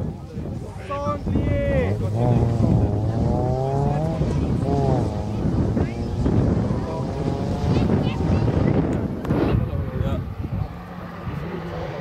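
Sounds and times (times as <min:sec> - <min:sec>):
race car engine accelerating: 0:01.8 - 0:12.0.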